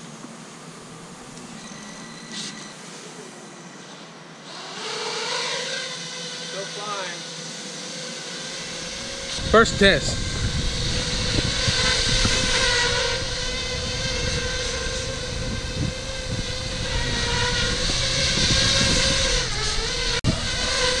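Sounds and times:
quadcopter motors whining: 0.0s - 21.0s.

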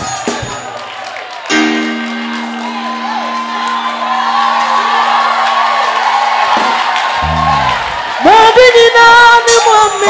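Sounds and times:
congregation shouting and cheering: 0.0s - 10.0s
keyboard sustained chord: 1.5s - 6.5s.

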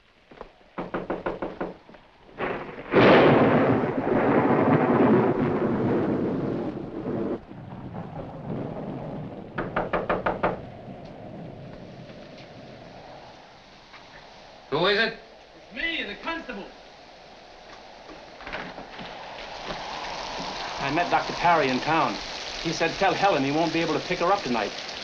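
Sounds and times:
thunder rumbling: 0.7s - 25.0s
knocking on wooden door: 0.8s - 1.9s, 9.6s - 10.6s.

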